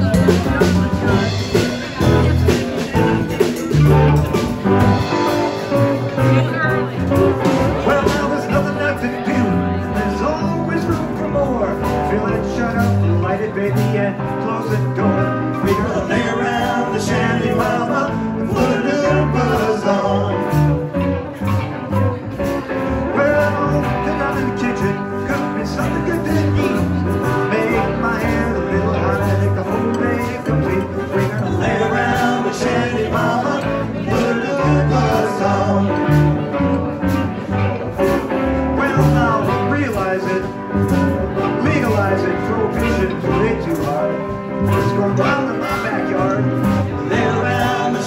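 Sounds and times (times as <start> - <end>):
drums keeping a beat: 0.0 - 48.0
electric guitar: 0.0 - 48.0
upright double bass: 0.0 - 48.0.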